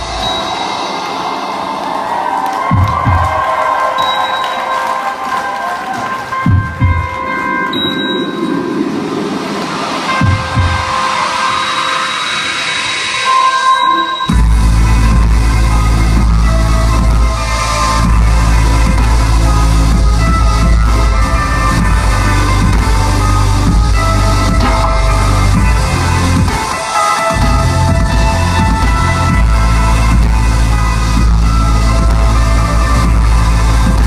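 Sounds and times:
synth pad: 0:06.7 - 0:34.0
full rock band with drums: 0:14.2 - 0:34.0.

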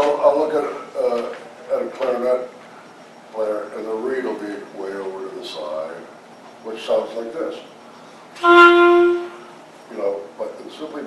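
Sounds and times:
clarinet holding a note: 0:08.4 - 0:09.6.

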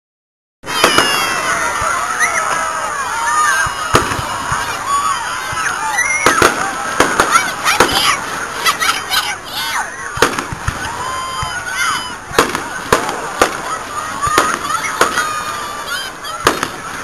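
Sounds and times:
firework shells bursting: 0:00.7 - 0:01.6, 0:03.9 - 0:04.8, 0:06.0 - 0:08.8, 0:10.2 - 0:11.0, 0:12.2 - 0:15.5, 0:16.4 - 0:17.0.

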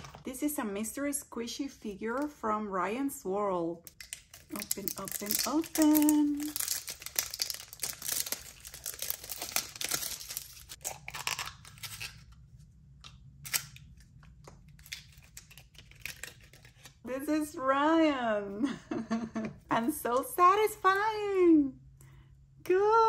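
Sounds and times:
plastic wrapping crinkling and tearing: 0:03.9 - 0:12.3, 0:13.4 - 0:17.0.

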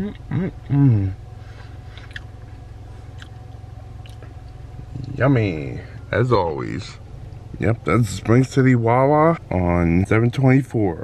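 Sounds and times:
car engine idling: 0:00.0 - 0:11.0
person chewing food: 0:01.9 - 0:02.3, 0:03.1 - 0:03.4, 0:04.0 - 0:04.6.

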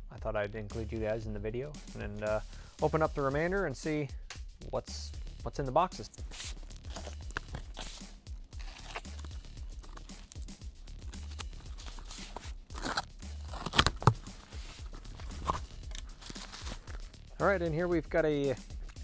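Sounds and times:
background music: 0:00.0 - 0:19.0
cardboard flaps rustling: 0:06.2 - 0:10.2, 0:11.1 - 0:17.1
sharp cardboard clicks: 0:11.1 - 0:14.4
box cutter cutting cardboard: 0:11.1 - 0:17.0.

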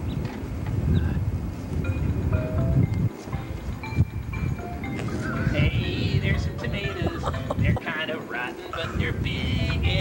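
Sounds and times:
wind rumble on microphone: 0:00.0 - 0:08.0, 0:08.6 - 0:10.0
electronic keyboard notes: 0:01.8 - 0:10.0.

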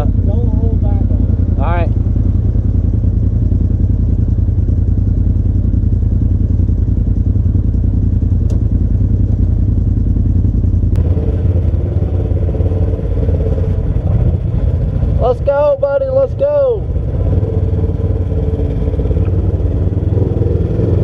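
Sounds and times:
engine idling: 0:00.0 - 0:21.0.

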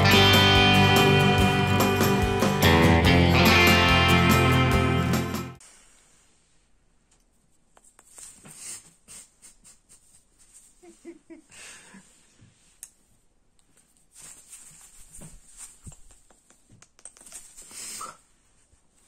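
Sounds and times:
close rustling of clothing: 0:13.7 - 0:16.2.

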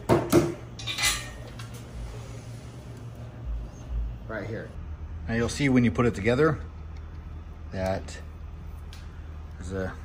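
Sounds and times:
metal engine parts clanking: 0:00.8 - 0:01.7.

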